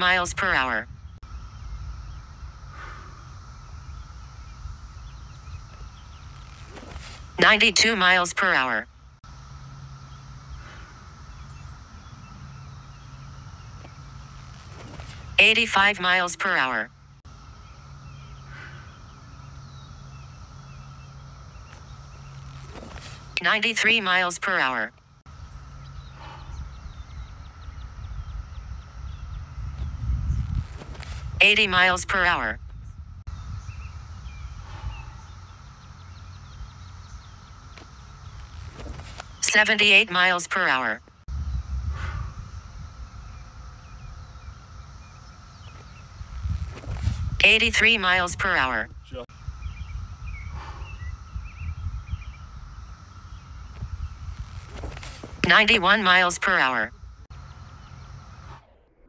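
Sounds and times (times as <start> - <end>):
low rumble with hum: 0.0 - 59.0
faint bird chirps: 17.3 - 24.6, 25.3 - 59.0.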